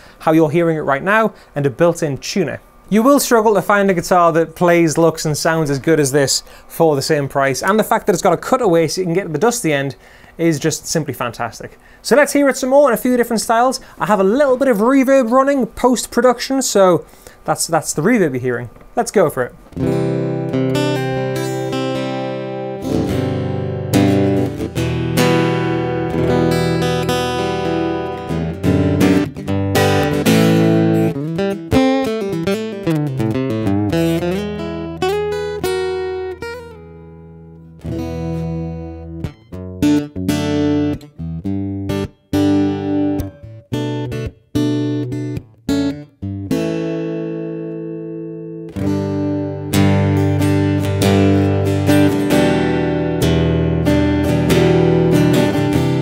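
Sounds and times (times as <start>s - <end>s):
acoustic guitar chords with reverb: 19.7s - 56.0s.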